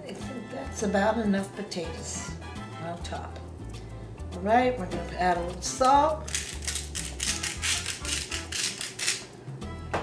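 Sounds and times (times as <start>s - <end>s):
salt grinder grinding: 5.8s - 9.3s.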